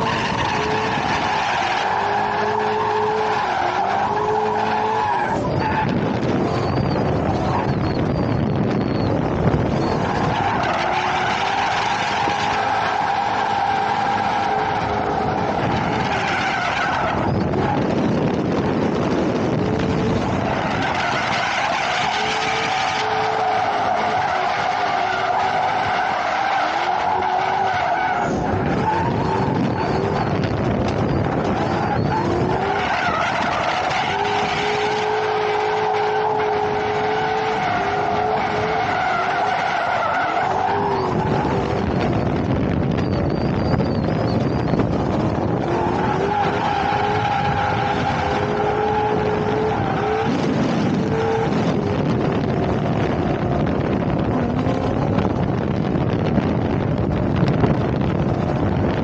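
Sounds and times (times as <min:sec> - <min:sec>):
car engine at high revs: 0:00.0 - 0:59.0
tires squealing: 0:00.0 - 0:59.0.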